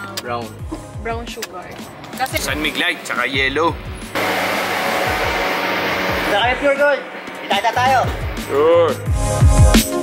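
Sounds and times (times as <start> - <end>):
background music with beat: 0.0 - 10.0
steady rushing noise: 2.5 - 8.6.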